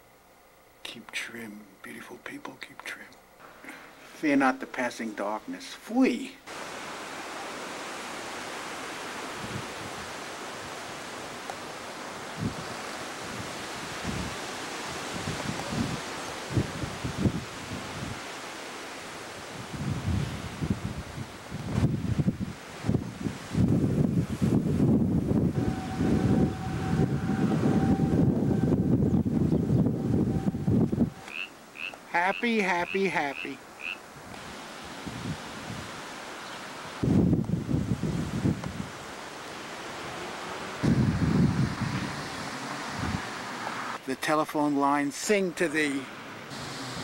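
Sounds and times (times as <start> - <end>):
faint steady tone: 0.0 - 5.6
running water hiss: 3.4 - 26.8, 30.1 - 44.1, 44.8 - 47.0
wind buffeting microphone: 9.1 - 11.1, 12.2 - 18.3, 19.4 - 31.4, 34.2 - 36.1, 36.9 - 39.1, 39.9 - 43.6.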